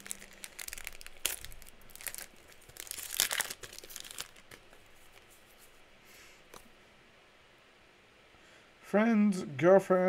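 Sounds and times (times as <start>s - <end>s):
foil wrapper crinkling: 0.0s - 5.8s.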